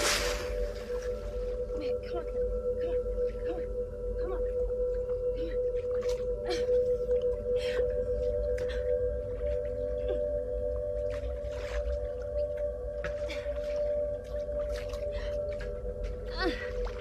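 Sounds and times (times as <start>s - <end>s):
low rumble: 0.0s - 17.0s.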